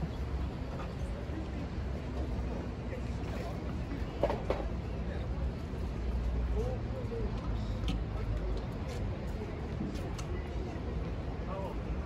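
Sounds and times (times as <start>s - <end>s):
low city rumble: 0.0s - 12.0s
passers-by talking: 0.0s - 12.0s.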